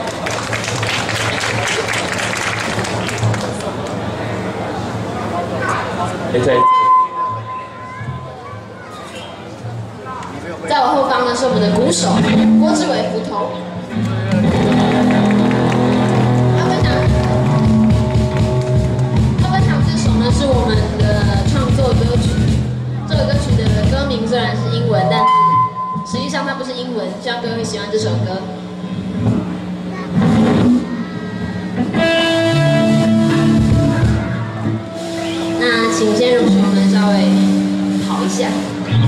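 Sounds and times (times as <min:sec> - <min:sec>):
electric bass and guitar notes: 0:11.4 - 0:26.3, 0:27.5 - 0:39.0
drum and cymbal hits: 0:14.3 - 0:24.2, 0:29.1 - 0:39.0
guitar chord ringing: 0:31.8 - 0:39.0.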